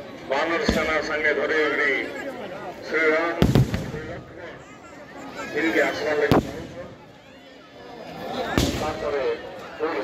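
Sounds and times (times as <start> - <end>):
crowd talking: 0.0 - 10.0
firework bang: 3.4 - 4.3.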